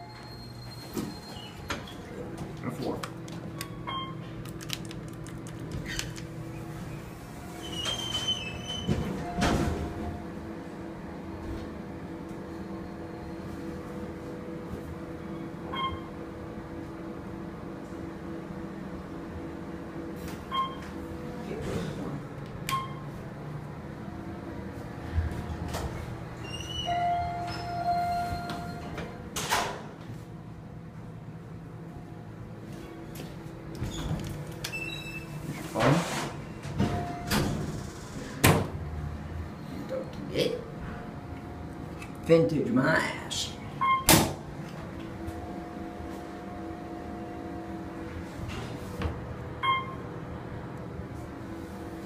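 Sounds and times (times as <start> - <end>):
elevator motor hum: 0.0 - 42.8, 43.4 - 52.0
elevator doors sliding shut: 5.8 - 10.3, 25.0 - 30.0, 33.8 - 38.8.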